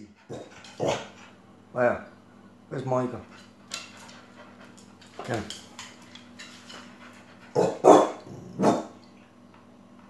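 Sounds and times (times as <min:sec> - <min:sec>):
dog barking: 0:07.6 - 0:08.9.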